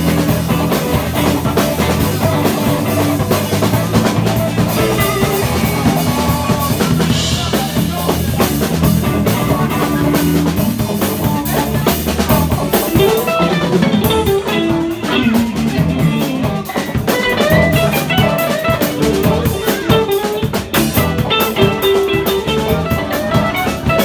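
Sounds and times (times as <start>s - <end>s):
bass: 0.0s - 24.0s
drum kit with rimshots: 0.0s - 24.0s
electric guitar lead: 0.0s - 24.0s.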